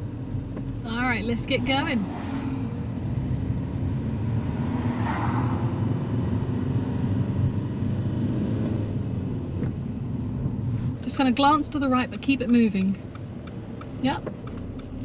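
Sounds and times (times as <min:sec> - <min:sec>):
car engine and tyre rumble: 0:00.0 - 0:15.0.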